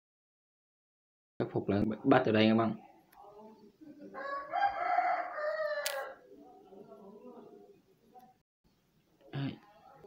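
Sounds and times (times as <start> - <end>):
sharp click: 5.8 - 6.0.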